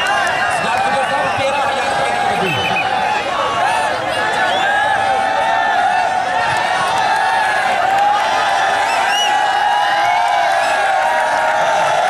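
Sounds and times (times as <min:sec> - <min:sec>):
crowd din: 0:00.0 - 0:12.0.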